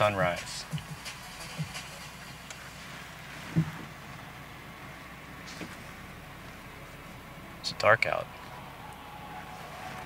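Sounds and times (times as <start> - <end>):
car engine idling: 0.0 - 10.0
dull thump: 3.4 - 4.0.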